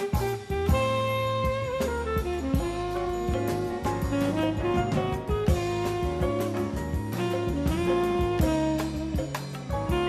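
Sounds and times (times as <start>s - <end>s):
drum kit beat: 0.0s - 10.0s
jazz band: 0.0s - 10.0s
tenor saxophone lead: 0.0s - 10.0s.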